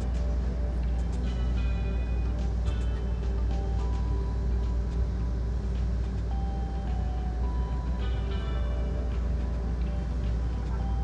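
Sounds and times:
train rumble: 0.0s - 11.0s.

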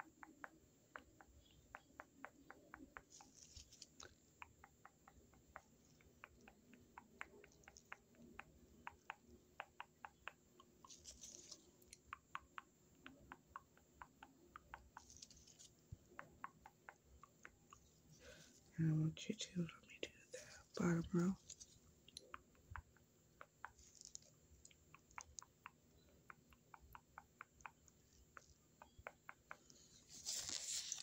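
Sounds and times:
toothbrush bristles ticking on microphone: 0.0s - 18.4s.

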